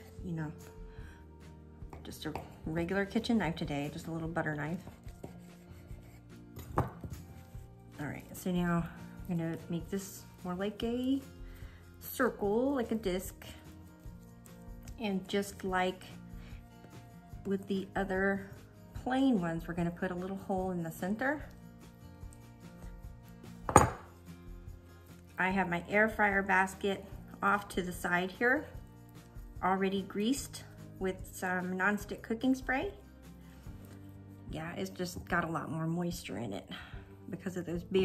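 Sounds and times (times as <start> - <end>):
quiet background music: 0.0 - 38.0
knife tapping and scraping dough: 1.8 - 2.8, 4.5 - 7.7.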